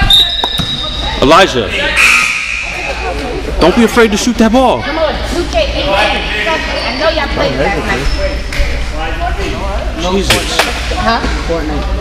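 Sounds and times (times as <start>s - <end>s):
people talking in echoing gym: 0.0s - 12.0s.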